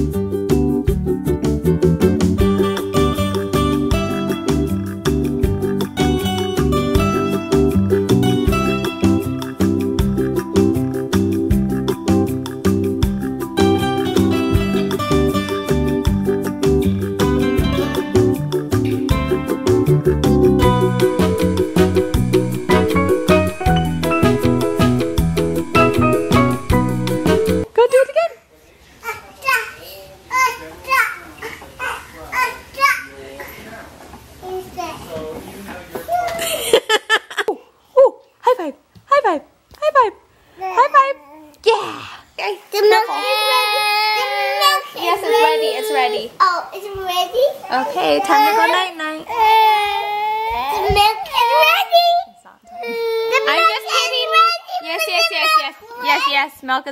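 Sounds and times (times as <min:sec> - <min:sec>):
toddler babbling: 0:29.0 - 0:33.4, 0:40.6 - 0:41.6, 0:42.8 - 0:56.3.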